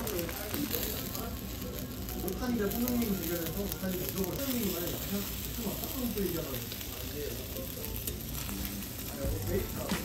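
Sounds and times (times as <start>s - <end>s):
food sizzling on a griddle: 0.0s - 10.0s.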